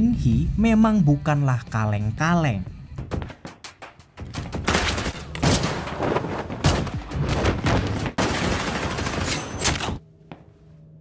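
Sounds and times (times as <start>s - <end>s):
rapid gunfire: 8.1s - 9.6s.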